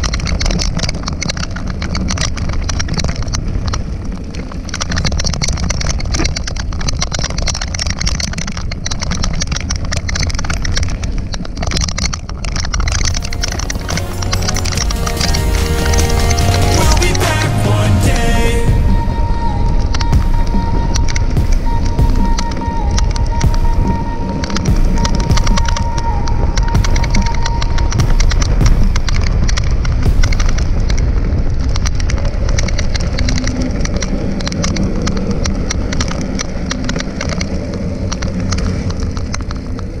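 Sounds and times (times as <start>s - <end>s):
music with a steady beat: 13.2s - 31.2s.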